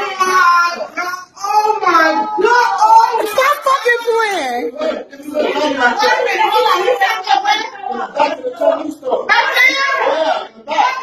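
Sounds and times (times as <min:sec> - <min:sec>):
people shouting and shrieking: 0:00.0 - 0:08.4, 0:09.2 - 0:11.0.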